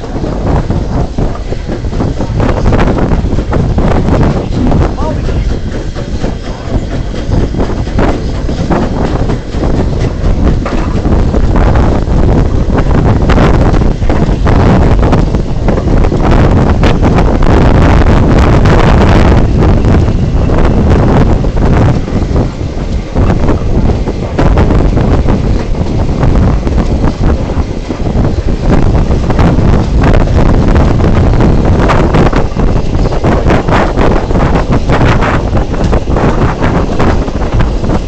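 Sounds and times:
moving train running noise: 0:00.0 - 0:38.0
wind buffeting microphone: 0:00.0 - 0:38.0.

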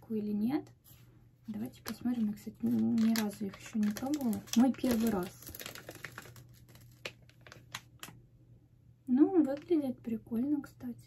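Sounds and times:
plastic packaging crinkling: 0:01.5 - 0:08.2.

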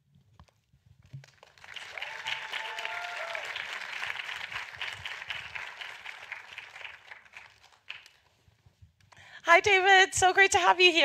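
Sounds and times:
audience applauding: 0:01.3 - 0:08.2
person cheering in crowd: 0:01.9 - 0:03.8.

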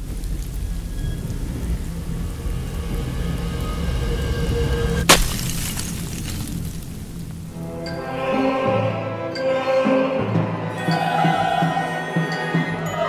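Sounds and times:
low rumbling roll: 0:00.0 - 0:07.8.

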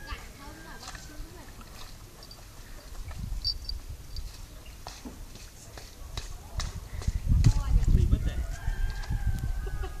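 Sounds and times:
rooster crowing: 0:08.2 - 0:10.0.

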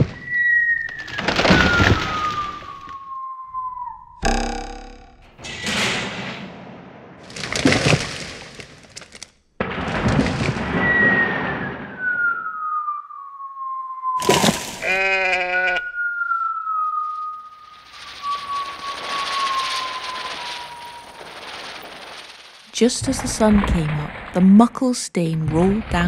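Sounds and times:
falling whistle-like tone: 0:00.0 - 0:05.9, 0:10.8 - 0:14.6, 0:15.6 - 0:22.3
sharp crack: 0:04.2 - 0:12.1, 0:16.9 - 0:24.4
crunching crashing bursts: 0:04.3 - 0:11.7, 0:17.4 - 0:24.4.

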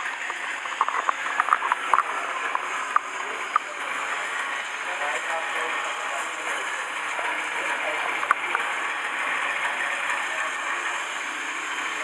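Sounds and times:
crowded room noise: 0:00.0 - 0:12.0.

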